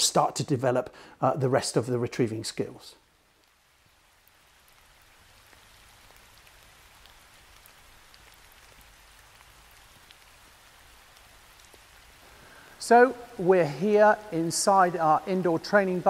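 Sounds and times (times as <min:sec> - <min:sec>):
light rain hiss: 0:00.0 - 0:16.0
raindrop ticks: 0:03.1 - 0:16.0.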